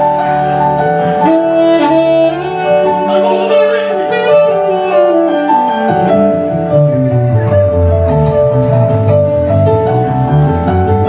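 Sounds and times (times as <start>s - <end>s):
saxophone melody: 0.0s - 9.4s
keyboard accompaniment: 0.0s - 11.0s.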